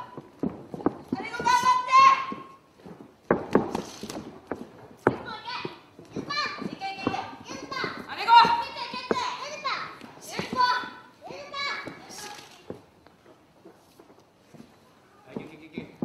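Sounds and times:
sharp knocks: 0:00.2 - 0:14.2.

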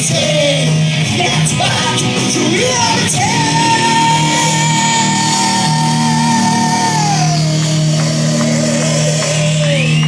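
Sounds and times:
drums: 0:00.0 - 0:10.0
electric guitar: 0:00.0 - 0:10.0.

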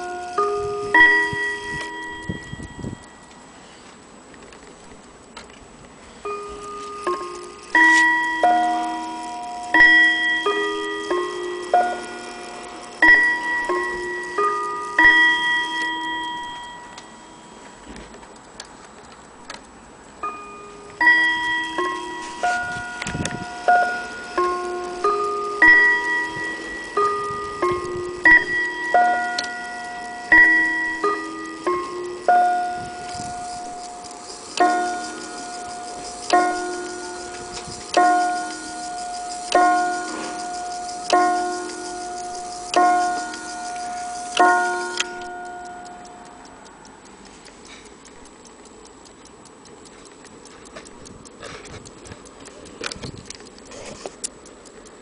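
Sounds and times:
clock chime on gong rods: 0:00.0 - 0:03.6, 0:06.2 - 0:17.9, 0:20.2 - 0:46.6.

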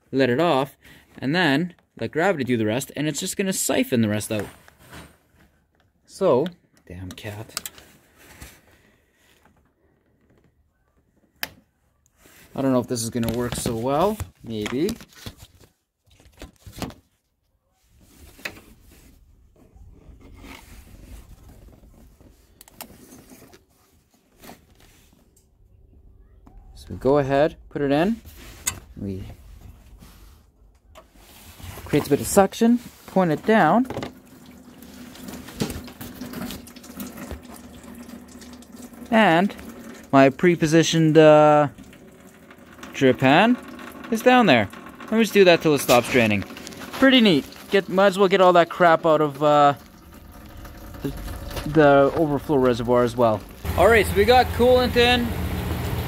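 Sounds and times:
faint handling noise: 0:04.3 - 0:26.6
liquid trickling into a pan: 0:34.1 - 0:40.2, 0:45.9 - 0:53.6.

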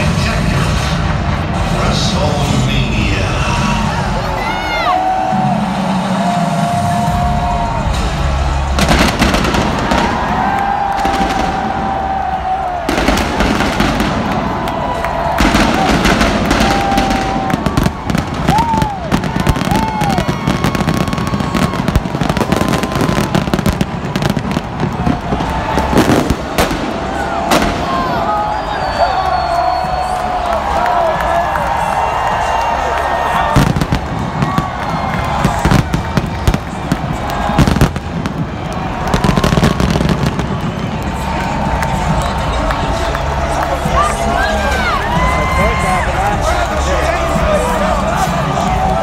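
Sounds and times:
fireworks bangs: 0:07.9 - 0:29.0, 0:33.4 - 0:42.7.

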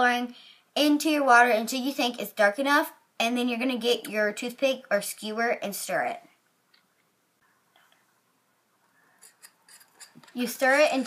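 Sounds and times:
skewer stirring in paper cup: 0:09.2 - 0:11.0.

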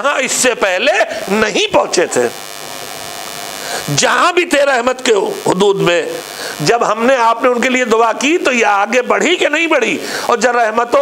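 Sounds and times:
man speaking: 0:00.0 - 0:02.4, 0:03.8 - 0:11.0
electrical buzzing hum: 0:00.0 - 0:11.0.

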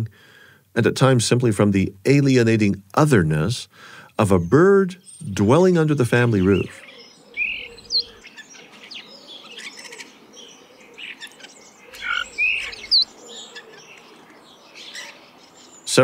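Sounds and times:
birds chirping and whistling: 0:04.4 - 0:16.0
sharp slurred bird whistle: 0:11.9 - 0:13.1.

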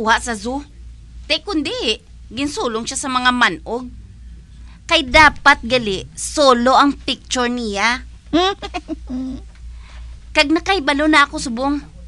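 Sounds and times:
person humming mm: 0:08.4 - 0:09.5.

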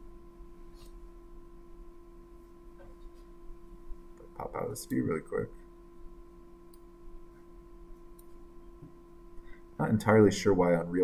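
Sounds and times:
faint hum with steady tones: 0:00.0 - 0:11.0.

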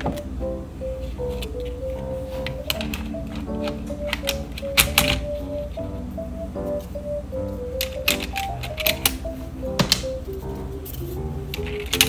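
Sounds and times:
light background music: 0:00.0 - 0:12.0
plastic keyboard parts clicking: 0:01.3 - 0:05.4, 0:07.8 - 0:10.1, 0:11.5 - 0:12.0.

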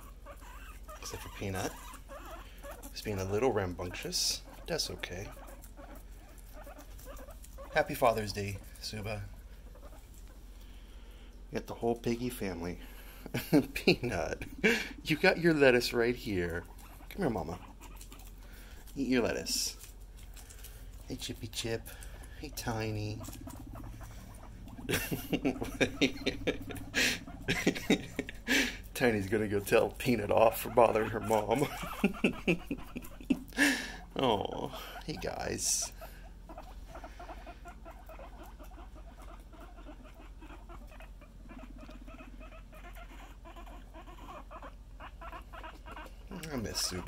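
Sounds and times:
guinea pig rumble buzz: 0:00.0 - 0:47.0
guinea pigs crunching lettuce: 0:00.0 - 0:47.0.

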